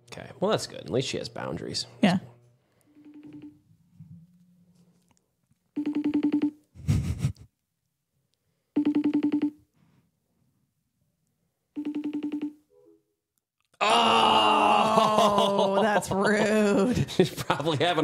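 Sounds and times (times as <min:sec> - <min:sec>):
pulsing phone ringtone: 0:02.9 - 0:03.6, 0:05.8 - 0:06.6, 0:08.7 - 0:09.6, 0:11.8 - 0:12.6.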